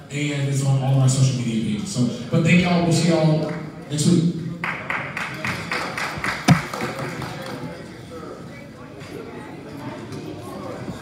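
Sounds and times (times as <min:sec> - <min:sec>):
people clapping in a hall: 0:04.6 - 0:08.0
loud thump: 0:06.5 - 0:06.7.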